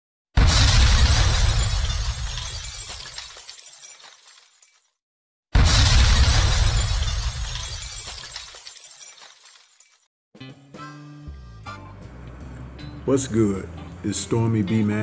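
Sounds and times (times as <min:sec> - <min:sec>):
crash with deep boom: 0:00.4 - 0:02.9, 0:05.6 - 0:08.2.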